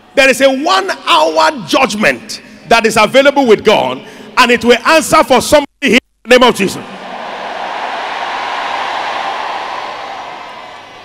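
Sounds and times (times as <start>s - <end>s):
crowd cheering and applauding: 6.9s - 11.0s.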